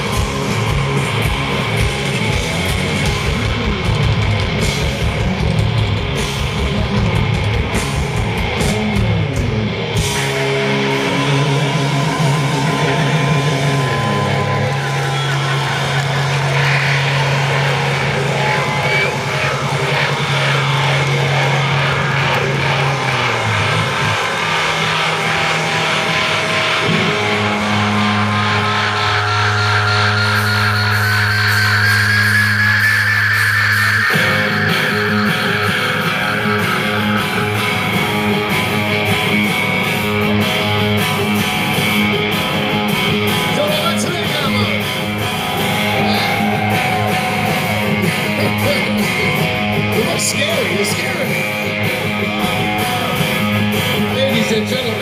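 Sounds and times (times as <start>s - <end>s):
live hard rock band: 0.0s - 55.0s.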